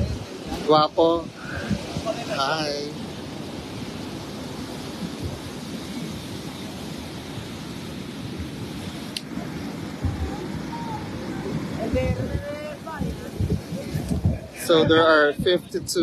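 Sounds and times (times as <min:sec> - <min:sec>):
small waves on sandy beach: 0:00.0 - 0:16.0
wind rumbling on microphone: 0:00.0 - 0:16.0.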